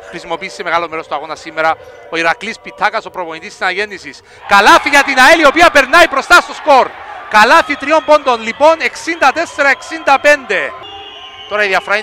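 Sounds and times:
commentator speaking: 0.0 - 10.8, 11.5 - 12.0.

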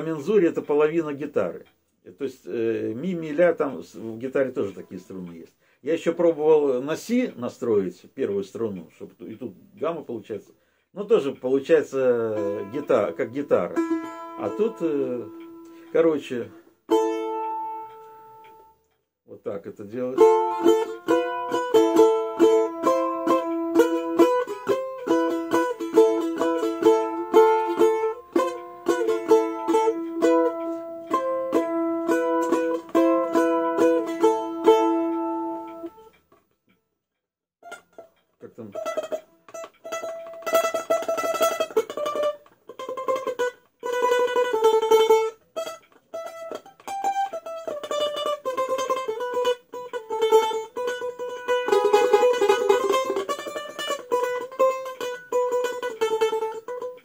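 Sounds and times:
balalaika strumming: 0.0 - 36.4, 37.6 - 57.0.

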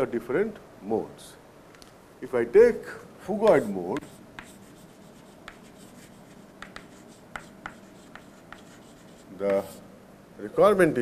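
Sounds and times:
chalk tapping on board: 3.4 - 9.8
chalk scratching on chalkboard: 3.5 - 9.8.

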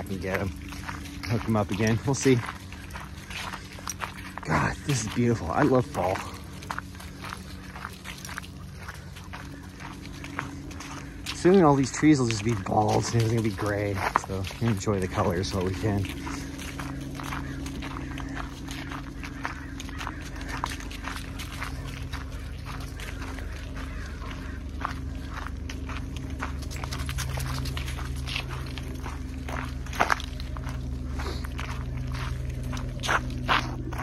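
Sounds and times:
dogs moving about: 0.0 - 34.0
footsteps crunching on gravel: 0.0 - 34.0
steady low hum: 0.0 - 34.0.

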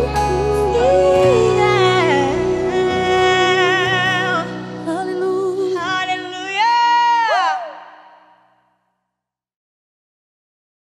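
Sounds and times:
woman singing high note: 0.0 - 8.3.

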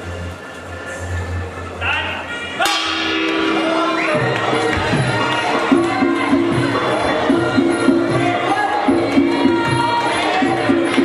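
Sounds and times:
ring bell clang: 2.7 - 7.9.

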